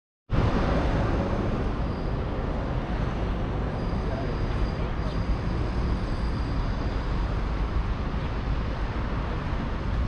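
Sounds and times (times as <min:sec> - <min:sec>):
distant road traffic: 0:00.3 - 0:10.0.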